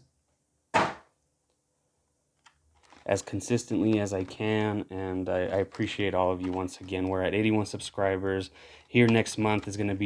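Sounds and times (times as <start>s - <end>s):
plastic packaging knock: 0.8s - 1.1s.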